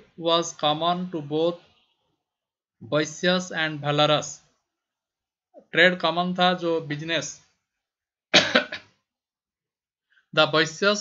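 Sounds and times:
man coughing: 8.3 - 8.9.

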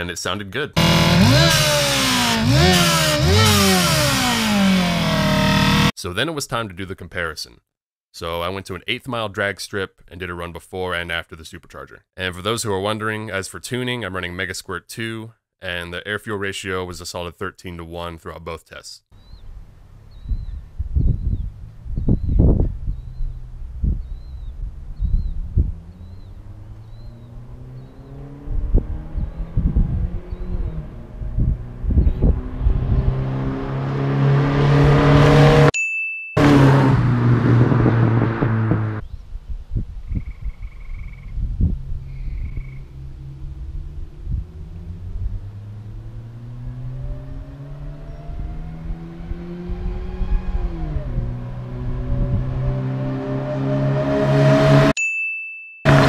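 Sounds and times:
car engine at full throttle: 0.8 - 5.9, 25.6 - 35.8, 36.4 - 39.0, 42.8 - 55.0
short chime: 55.0 - 55.9.

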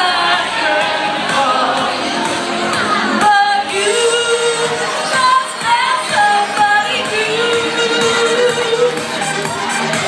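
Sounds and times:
woman singing karaoke: 0.0 - 9.4
pop backing track: 0.0 - 10.0.

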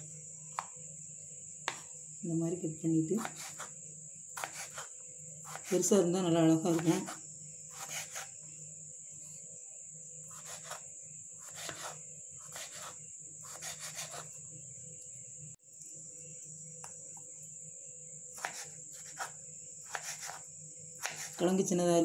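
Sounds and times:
knife cutting potato on wooden board: 1.6 - 1.9, 3.2 - 3.8, 4.4 - 5.9, 6.6 - 8.3, 10.3 - 10.8, 11.4 - 14.4, 18.4 - 21.5.

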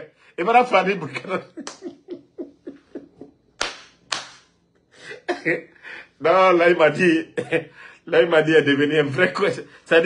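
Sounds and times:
man laughing: 1.0 - 3.4
sharp hand claps: 1.6 - 1.9, 3.6 - 4.6.

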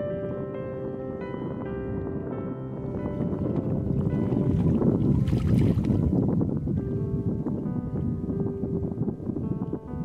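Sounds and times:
background music with steady tones: 0.0 - 10.0
water splashing off net: 4.6 - 6.0.

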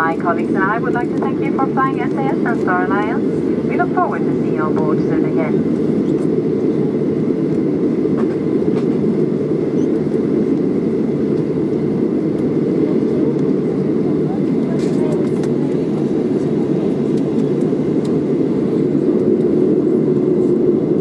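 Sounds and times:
aircraft cabin rumble: 0.0 - 21.0.

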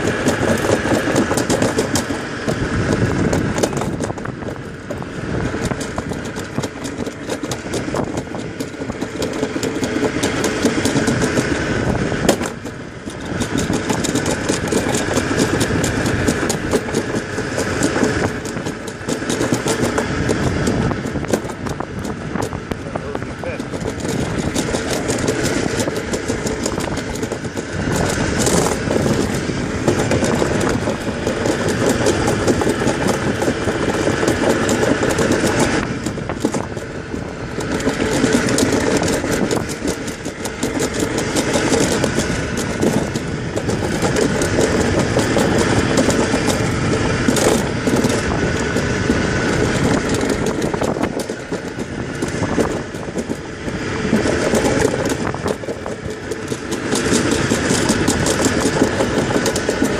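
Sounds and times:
sled wheels rumbling on steel track: 0.0 - 59.9.

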